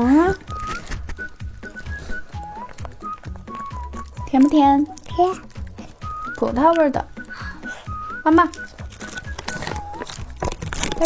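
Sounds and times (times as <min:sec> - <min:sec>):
light background music: 0:00.0 - 0:11.0
plastic packaging crinkling: 0:00.0 - 0:11.0.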